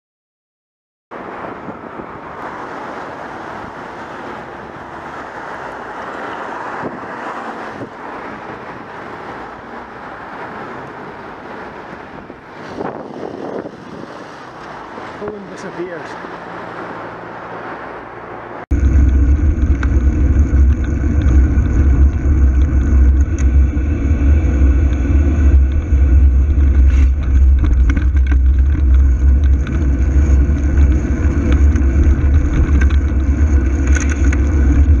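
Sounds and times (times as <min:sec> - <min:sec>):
wind and road noise rumble: 0:01.1 - 0:35.0.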